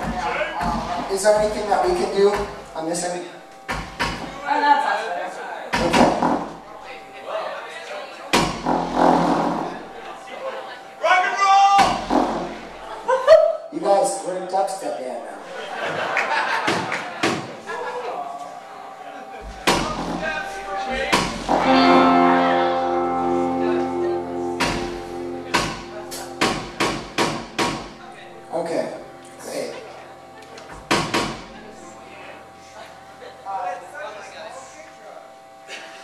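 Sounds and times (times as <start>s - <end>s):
electrical buzz from sound system: 0.0s - 4.9s, 5.7s - 7.4s, 8.1s - 36.0s
indistinct talk: 0.0s - 36.0s
deep booming hits through speakers: 8.4s - 9.8s, 24.6s - 28.1s
band playing: 8.5s - 10.3s, 10.9s - 13.1s, 19.4s - 33.4s
sustained keyboard chord: 18.7s - 35.7s.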